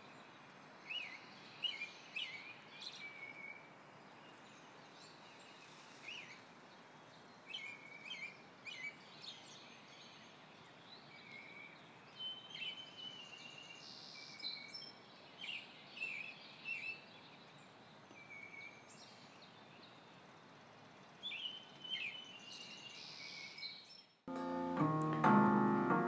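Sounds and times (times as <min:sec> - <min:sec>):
faint steady hiss: 0:00.0 - 0:26.0
songbirds chirping: 0:00.0 - 0:26.0.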